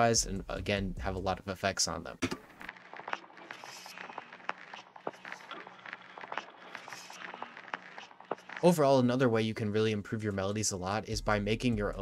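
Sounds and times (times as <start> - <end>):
vinyl crackle: 1.3 - 11.0
processed game creature noises: 2.7 - 9.0.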